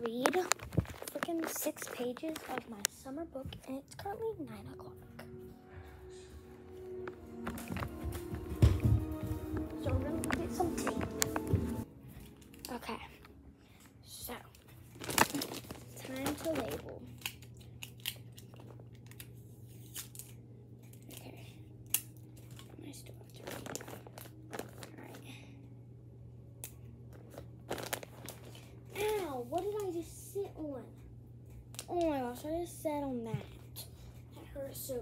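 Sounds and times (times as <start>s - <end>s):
crinkling and rustling: 0.0s - 3.7s, 6.9s - 13.3s, 14.3s - 21.4s, 22.4s - 25.3s, 27.1s - 30.1s
child's voice: 0.0s - 5.3s, 9.8s - 11.2s, 16.0s - 17.2s, 28.9s - 31.0s, 31.8s - 35.0s.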